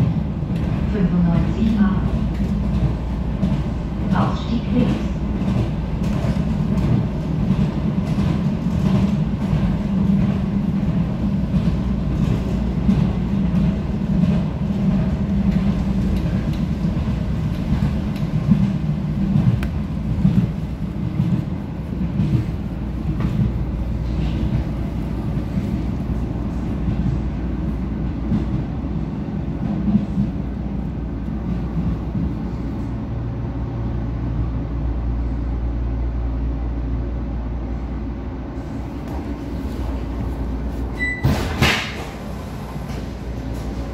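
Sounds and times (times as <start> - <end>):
train wheels rumbling on rail: 0.0 - 43.9.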